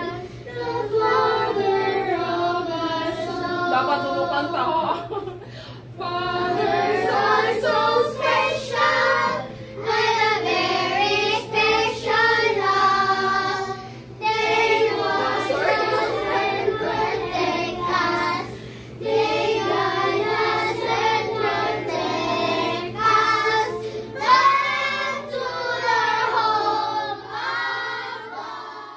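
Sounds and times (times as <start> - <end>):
children singing: 0.0 - 4.7, 6.0 - 28.9.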